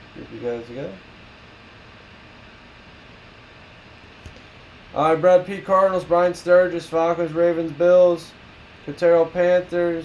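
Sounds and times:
low room tone hiss: 0.0s - 10.0s.

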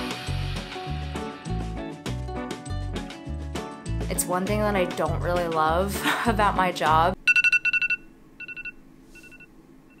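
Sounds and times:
phone alarm beeps: 7.3s - 10.0s.

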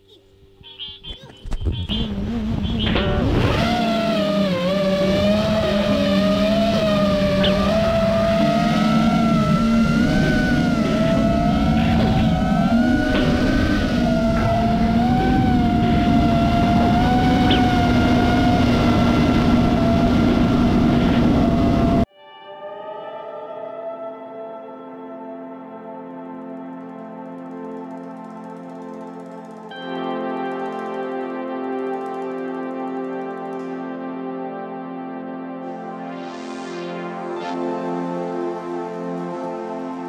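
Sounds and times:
quadcopter motors whining: 1.8s - 22.1s.

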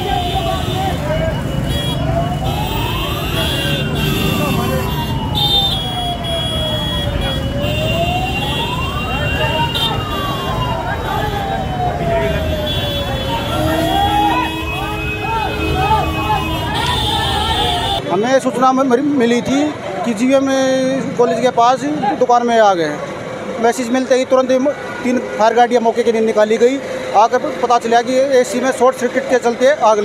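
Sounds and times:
fire engine siren wailing: 0.0s - 18.0s
voices shouting: 0.0s - 18.0s
street traffic: 0.0s - 30.0s.

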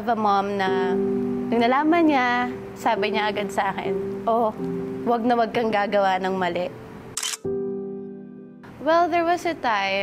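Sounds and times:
woman speaking: 0.0s - 6.8s, 8.8s - 10.0s
background music: 0.0s - 10.0s
camera shutter click: 7.2s - 7.5s.

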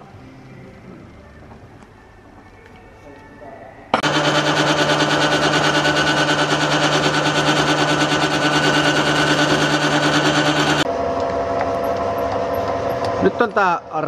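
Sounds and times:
metal lathe running: 4.0s - 10.9s.

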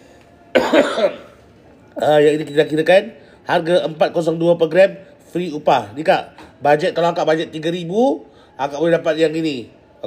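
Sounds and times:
person coughing: 0.5s - 1.4s.

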